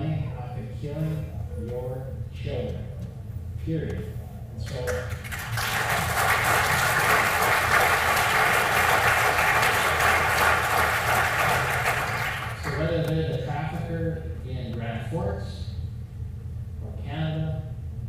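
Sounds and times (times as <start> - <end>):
audience applauding: 4.7 - 13.0.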